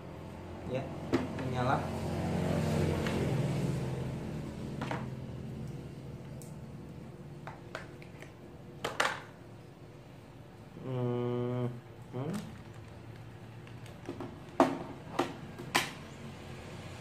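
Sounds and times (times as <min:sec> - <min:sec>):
low engine-like hum: 0:00.0 - 0:08.8.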